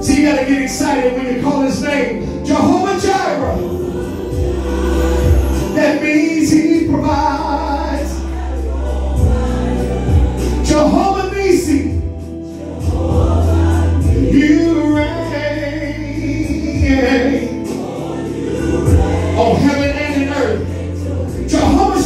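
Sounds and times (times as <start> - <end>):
man singing into microphone: 0.0 - 4.4, 5.6 - 8.2, 10.6 - 12.0, 14.0 - 17.8, 18.9 - 22.0
choir singing gospel music: 0.0 - 22.0.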